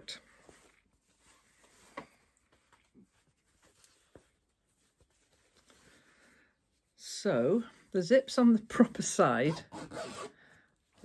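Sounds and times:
fabric rustling: 0.0s - 7.0s
zip being handled: 9.5s - 10.4s.

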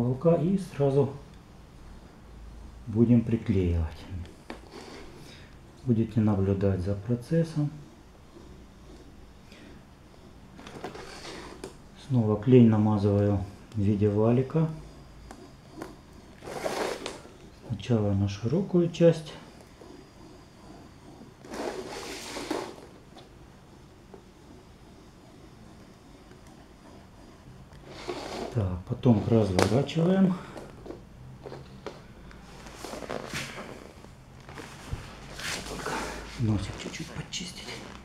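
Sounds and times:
soft scrapes and rustles: 2.9s - 38.0s.

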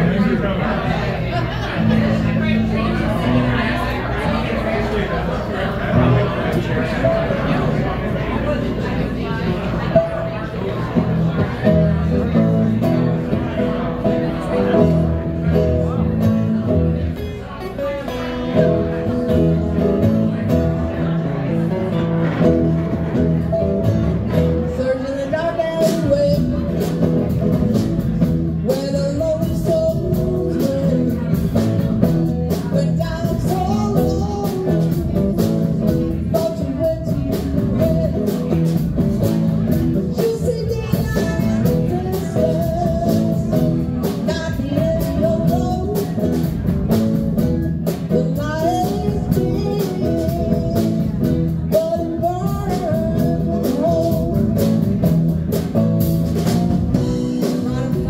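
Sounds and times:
live band playing: 0.0s - 58.0s
woman singing lead: 36.2s - 39.1s, 39.7s - 46.5s, 47.9s - 55.0s, 56.9s - 58.0s.

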